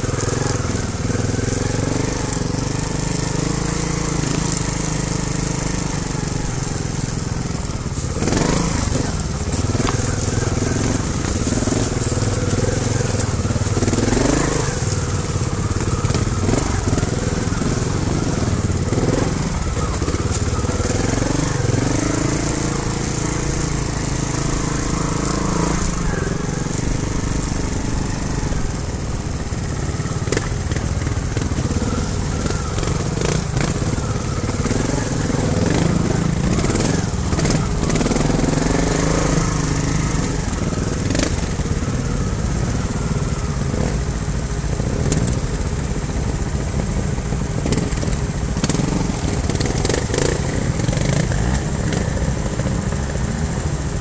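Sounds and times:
motorcycle engine at low revs: 0:00.0 - 0:54.0
motorcycle knocks and rattles: 0:00.0 - 0:54.0.

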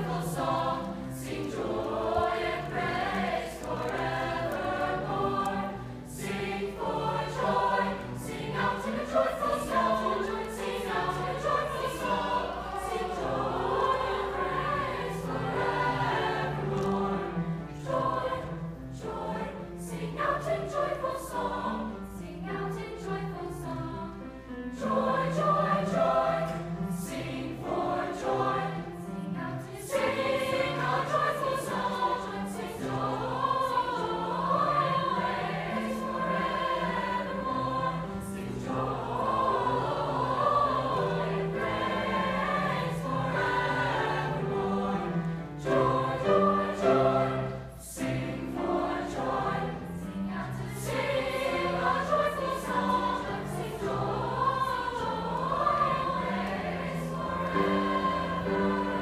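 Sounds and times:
choir singing: 0:00.0 - 0:59.0.

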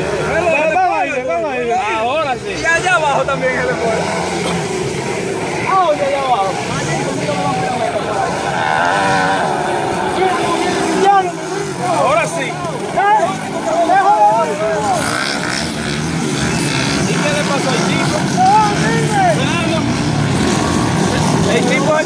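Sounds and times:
dirt bike engines revving: 0:00.0 - 0:22.0
spectators calling out: 0:06.6 - 0:22.0.

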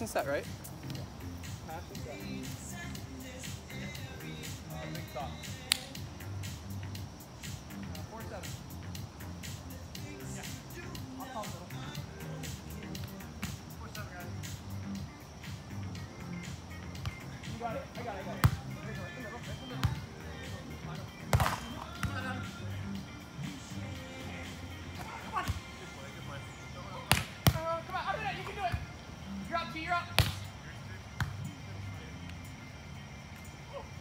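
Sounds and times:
background music: 0:00.0 - 0:34.0
hands hitting a volleyball: 0:21.3 - 0:22.1, 0:27.1 - 0:27.6.

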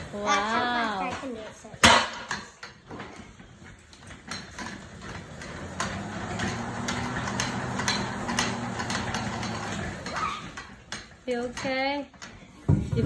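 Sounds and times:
cross trainer knocking: 0:00.9 - 0:13.0
flywheel humming: 0:02.9 - 0:12.4.

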